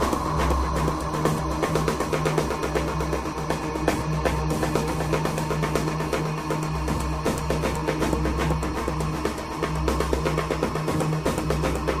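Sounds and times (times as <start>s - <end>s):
instrumental music with drum beat: 0.0s - 12.0s.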